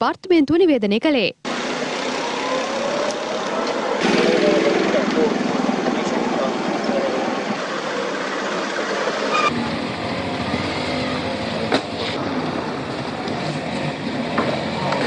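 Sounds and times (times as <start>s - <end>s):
road traffic engines: 1.4s - 15.0s.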